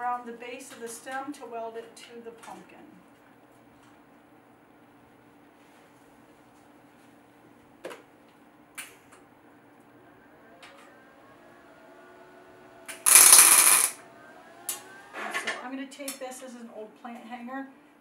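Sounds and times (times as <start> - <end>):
welder burst: 12.9 - 14.0.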